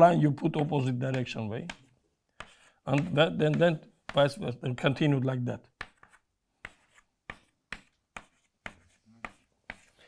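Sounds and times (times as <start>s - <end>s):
chalk tapping on blackboard: 0.5s - 5.0s, 5.7s - 10.0s.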